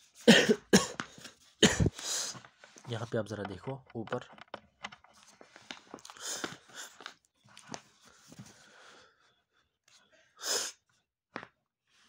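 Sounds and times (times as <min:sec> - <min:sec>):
man coughing: 0:00.2 - 0:02.1.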